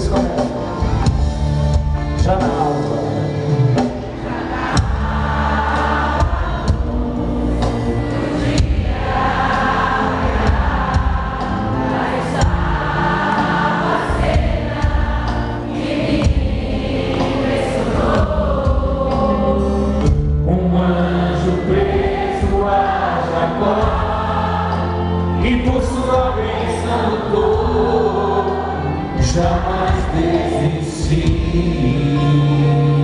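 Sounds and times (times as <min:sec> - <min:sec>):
amplified music: 0:00.0 - 0:33.0
congregation singing: 0:00.0 - 0:33.0.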